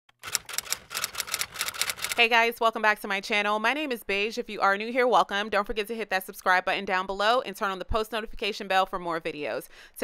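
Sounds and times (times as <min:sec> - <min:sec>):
rapid sharp clicks: 0:00.1 - 0:02.2.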